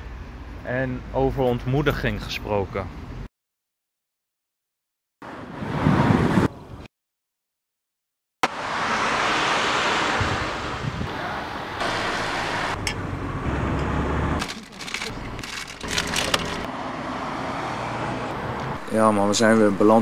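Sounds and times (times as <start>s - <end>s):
traffic: 0.0s - 3.3s, 5.2s - 6.9s, 8.4s - 20.0s
wind on microphone: 5.4s - 6.9s, 10.1s - 11.4s.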